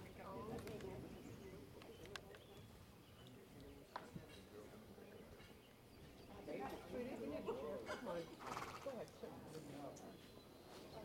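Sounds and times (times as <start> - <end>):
low murmured voices: 0.0 - 11.0.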